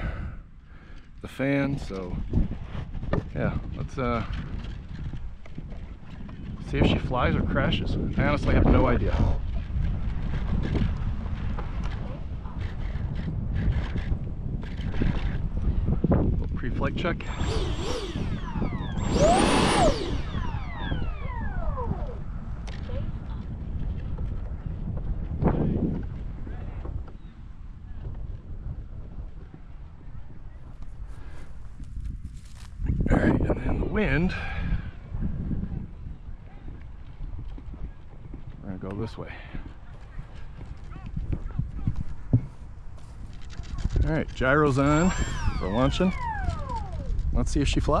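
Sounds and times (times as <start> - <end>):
wind buffeting microphone: 0.0 - 48.0
electric fan whine winding down: 16.7 - 23.1, 44.4 - 48.0.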